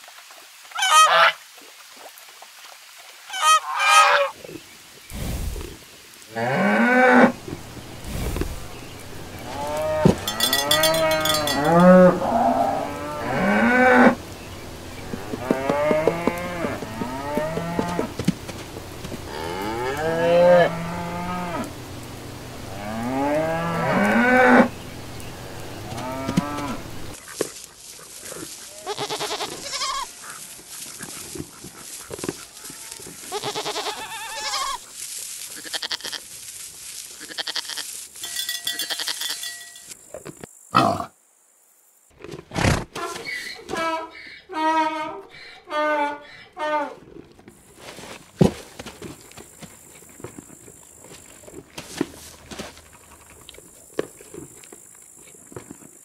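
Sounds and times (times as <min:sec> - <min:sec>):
geese honking: 0:03.3 - 0:04.3
cattle mooing: 0:08.6 - 0:14.2, 0:15.1 - 0:18.2, 0:19.3 - 0:21.7, 0:22.7 - 0:27.2.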